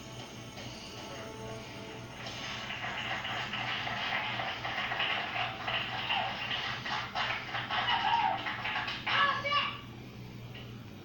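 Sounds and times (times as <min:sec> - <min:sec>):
small group clapping: 0:02.2 - 0:09.8.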